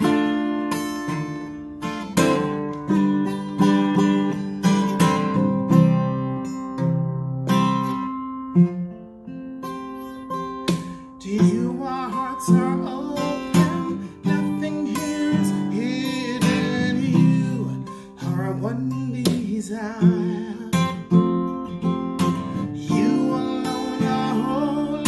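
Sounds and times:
acoustic guitar strummed: 0:00.0 - 0:25.0
man singing: 0:10.9 - 0:21.4, 0:22.3 - 0:25.0.

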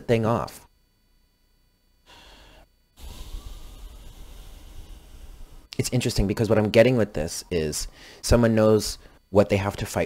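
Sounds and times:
person breathing in: 0:02.1 - 0:05.7, 0:07.9 - 0:08.2
person breathing out: 0:02.1 - 0:05.7, 0:07.9 - 0:08.2.

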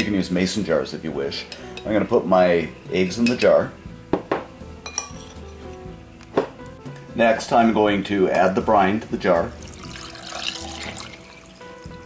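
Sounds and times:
background music: 0:00.0 - 0:12.0
eggs clinking against glass jar: 0:03.2 - 0:05.7, 0:09.6 - 0:11.6.

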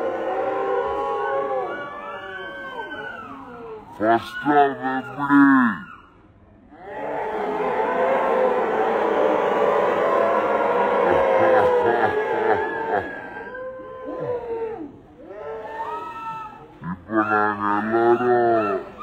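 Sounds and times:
crowd cheering and shouting: 0:00.0 - 0:05.8, 0:06.7 - 0:19.0.

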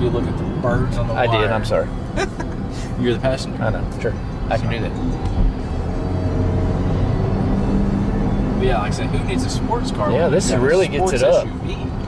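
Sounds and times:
car engine accelerating: 0:00.0 - 0:12.0
low road rumble: 0:00.0 - 0:12.0.

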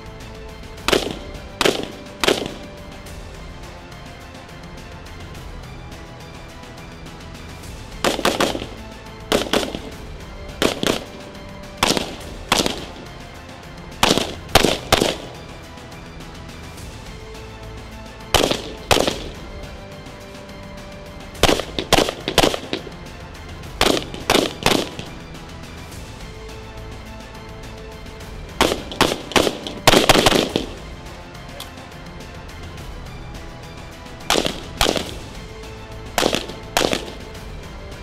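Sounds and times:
background music: 0:00.0 - 0:38.0
gunshots: 0:00.8 - 0:03.0, 0:08.0 - 0:13.2, 0:13.9 - 0:15.6, 0:18.3 - 0:19.7, 0:21.4 - 0:25.3, 0:28.5 - 0:31.0, 0:34.2 - 0:37.4.

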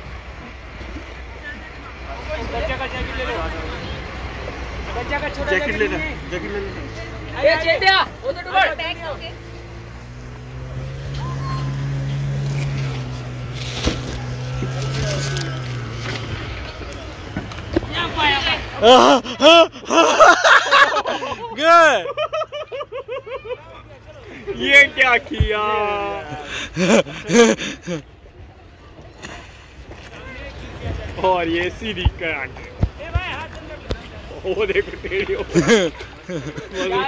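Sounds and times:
motorboat engine running: 0:00.0 - 0:19.7.

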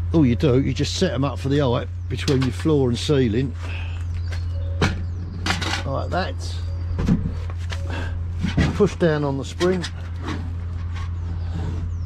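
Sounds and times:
man speaking: 0:00.0 - 0:03.6, 0:05.8 - 0:06.7, 0:08.7 - 0:10.0
low hum: 0:00.0 - 0:12.0.

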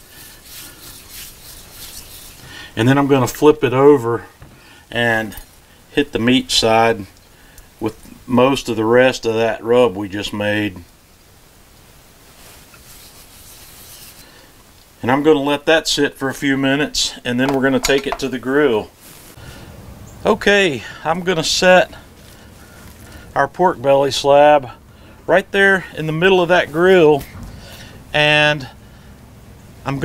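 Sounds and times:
hand rubbing meat: 0:00.0 - 0:03.4, 0:12.3 - 0:14.4, 0:17.3 - 0:19.4, 0:21.1 - 0:24.3.

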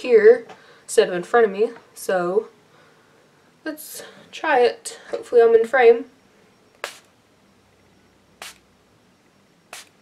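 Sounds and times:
spray bottle hissing: 0:06.8 - 0:07.1, 0:08.4 - 0:08.6, 0:09.7 - 0:10.0.

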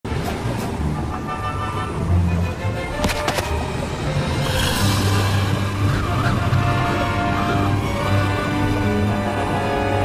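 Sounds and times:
dramatic background music: 0:00.2 - 0:10.0.

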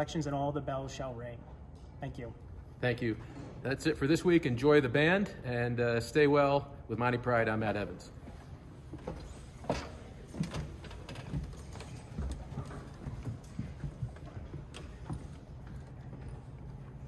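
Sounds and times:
low room hum: 0:00.0 - 0:17.0
footsteps on wooden stage floor: 0:08.2 - 0:17.0
knocks and rustles: 0:08.9 - 0:16.8.

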